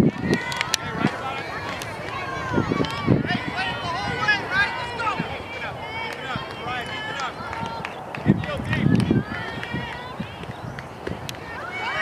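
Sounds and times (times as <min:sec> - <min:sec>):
young voices cheering: 0:00.0 - 0:12.0.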